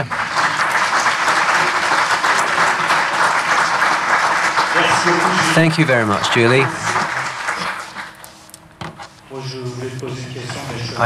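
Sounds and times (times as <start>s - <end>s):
audience applause: 0.0s - 8.6s.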